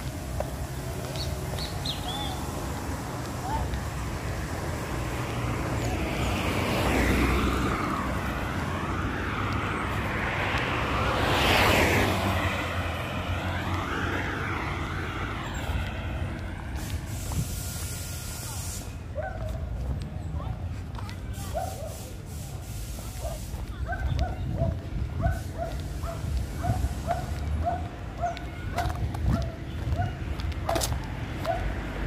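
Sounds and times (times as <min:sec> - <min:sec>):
cars passing on a road: 0:00.0 - 0:32.0.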